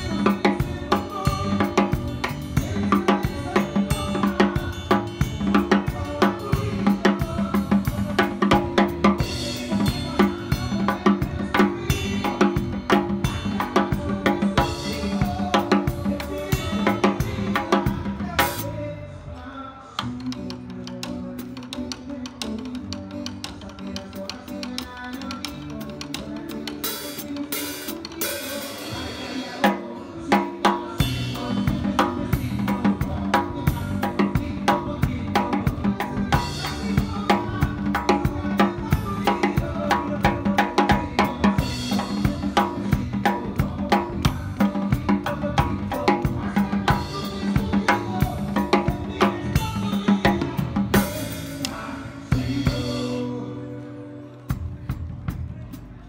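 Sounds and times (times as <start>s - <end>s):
drum kit played hard: 0.0s - 19.0s, 20.0s - 53.8s, 54.5s - 56.0s
bass guitar: 0.0s - 56.0s.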